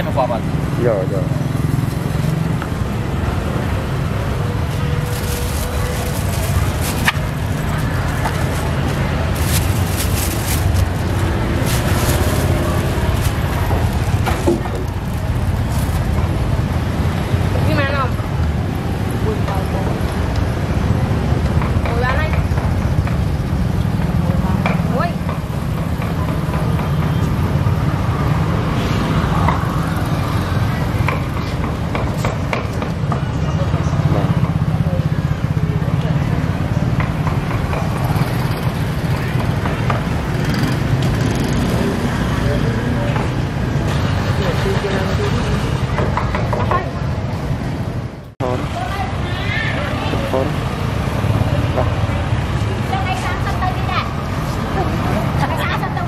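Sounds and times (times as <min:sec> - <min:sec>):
low rumble of motorbike traffic: 0:00.0 - 0:56.0
people talking: 0:24.2 - 0:25.3, 0:48.4 - 0:50.6, 0:52.8 - 0:56.0.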